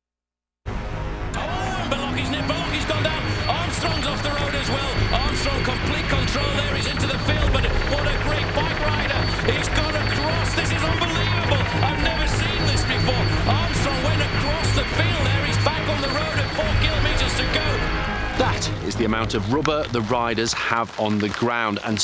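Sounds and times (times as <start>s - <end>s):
steady low drone: 0.7s - 20.6s
music: 0.7s - 22.0s
overlapping voices: 1.4s - 22.0s.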